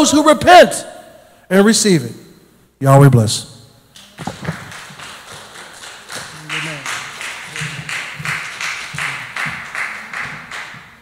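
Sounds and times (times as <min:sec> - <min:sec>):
hands clapping: 0:04.0 - 0:11.0
people talking: 0:06.3 - 0:08.0.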